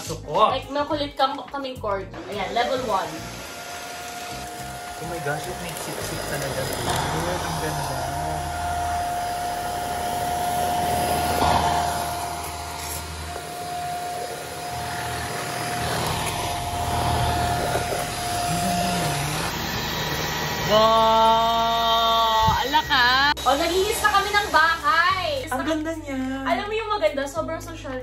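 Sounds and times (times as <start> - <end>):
vacuum motor whine: 2.3 - 25.8.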